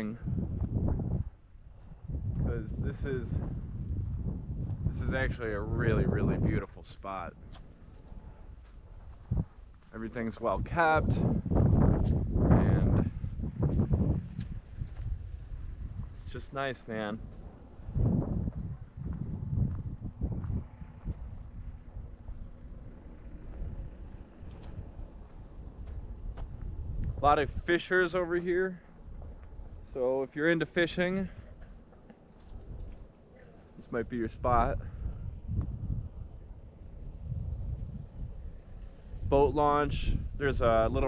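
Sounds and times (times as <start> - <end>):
wind buffeting microphone: 0.0 - 41.0.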